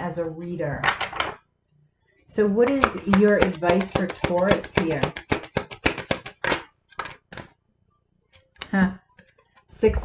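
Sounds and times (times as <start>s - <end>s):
cards shuffling by hand: 2.6s - 7.6s, 8.3s - 9.7s.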